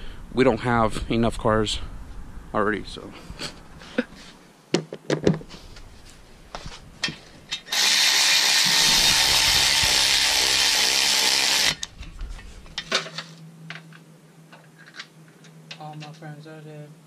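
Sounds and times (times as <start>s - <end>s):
power tool driving a bolt: 7.5s - 11.9s.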